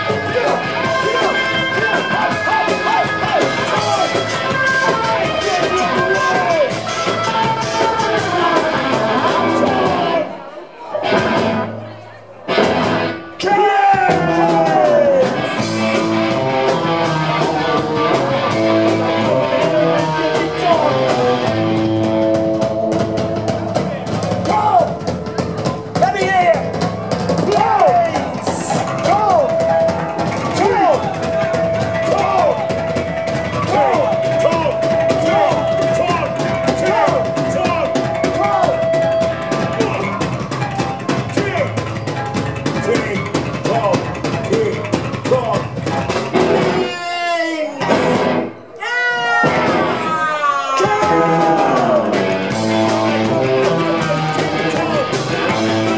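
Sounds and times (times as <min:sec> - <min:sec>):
live ska band playing: 0:00.0 - 0:55.9.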